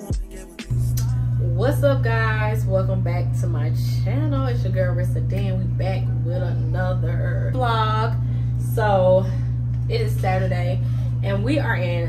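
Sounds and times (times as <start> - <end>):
background music: 0.0 - 1.6
low hum: 0.7 - 12.0
woman speaking: 0.9 - 12.0.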